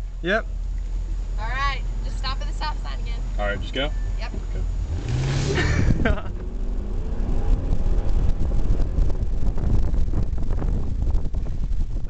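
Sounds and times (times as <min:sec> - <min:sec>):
car engine accelerating hard: 0:00.2 - 0:12.0.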